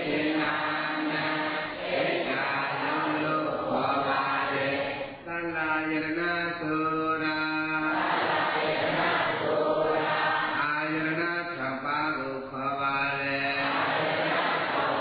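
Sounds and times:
man chanting: 0.0s - 1.6s, 2.2s - 8.1s, 10.5s - 13.9s.

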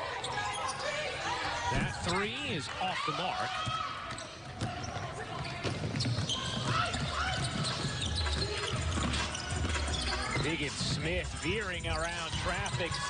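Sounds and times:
sneaker squeaks: 0.0s - 2.0s, 3.6s - 11.1s
players calling out: 0.0s - 13.0s
basketball dribbling: 4.5s - 13.0s.

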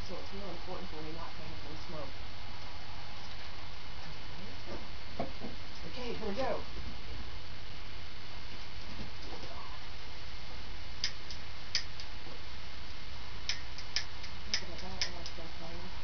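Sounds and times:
dry twigs crackling in fire: 8.4s - 15.4s.

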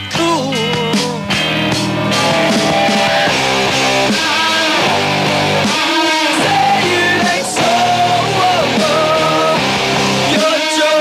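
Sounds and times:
rock music with guitars: 0.0s - 11.0s.

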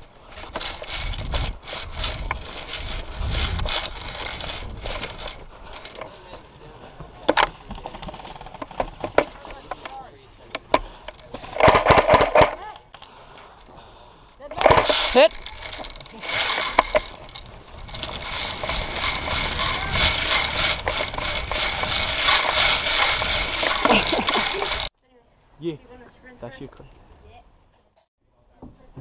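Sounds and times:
gear rustling: 0.0s - 6.5s, 14.5s - 24.9s
scattered clicks and knocks: 7.3s - 13.1s, 14.5s - 24.9s.

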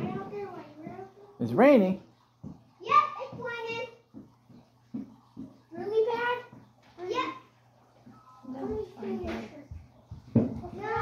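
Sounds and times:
faint taps: 2.4s - 7.0s
child's high-pitched wordless call: 10.6s - 11.0s.

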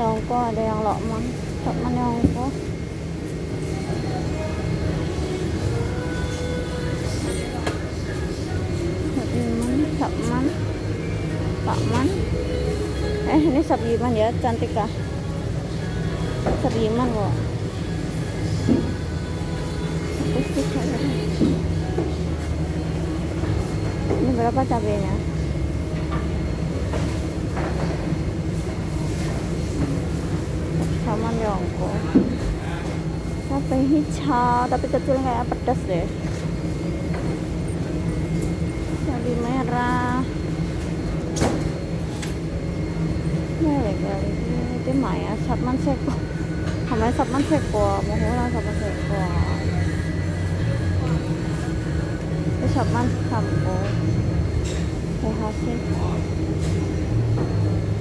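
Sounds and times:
faint indistinct voices: 42.7s - 58.0s.

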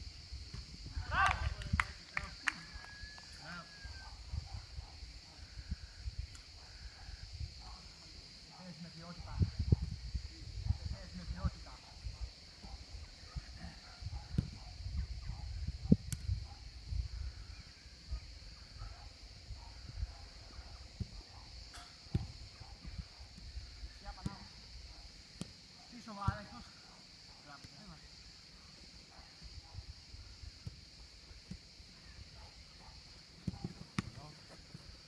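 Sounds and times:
distant shouts from players: 1.0s - 1.7s
wind buffeting microphone: 9.2s - 11.5s, 13.3s - 17.6s
steady high hiss: 14.9s - 35.0s.

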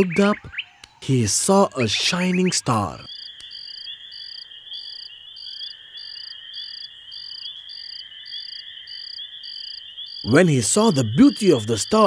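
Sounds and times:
cricket trill: 1.6s - 12.0s.

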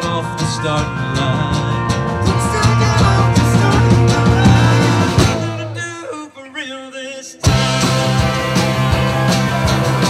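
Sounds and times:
live country rock band: 0.0s - 10.0s
person singing: 0.0s - 10.0s.

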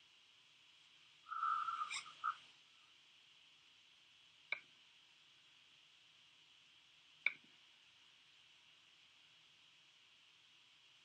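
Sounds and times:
click: 4.5s - 4.7s, 7.2s - 7.5s.

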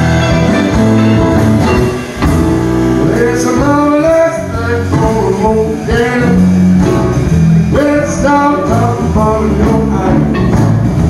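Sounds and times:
acoustic guitar: 0.0s - 11.0s
drums: 0.0s - 11.0s
electric guitar: 0.0s - 11.0s.

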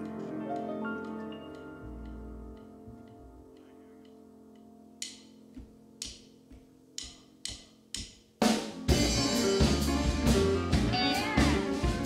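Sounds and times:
drumstick ticks on an even beat: 0.0s - 8.9s.

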